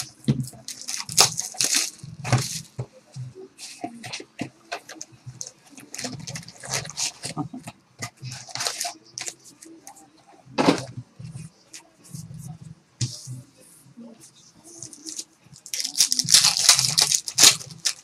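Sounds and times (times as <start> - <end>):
foil packs rustling: 0.0 - 2.7, 14.9 - 18.0
plastic shrink wrap crinkling: 0.0 - 2.7, 4.9 - 7.5, 8.2 - 9.4, 14.8 - 18.0.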